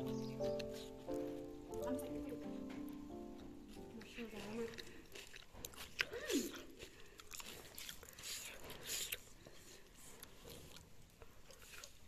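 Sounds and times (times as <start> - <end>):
chewing crunchy cucumber: 0.0 - 2.0, 3.1 - 12.0.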